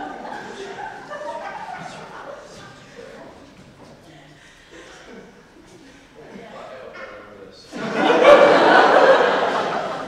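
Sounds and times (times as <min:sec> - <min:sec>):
people calling out and chattering: 0:00.0 - 0:09.5.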